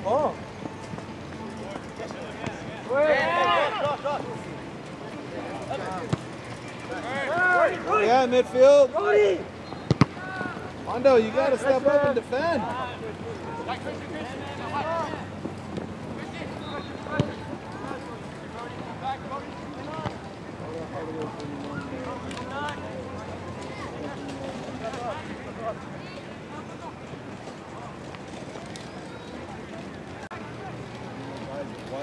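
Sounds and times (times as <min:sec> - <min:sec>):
outdoor background noise: 0:00.0 - 0:32.0
distant shouts of players: 0:08.9 - 0:10.7.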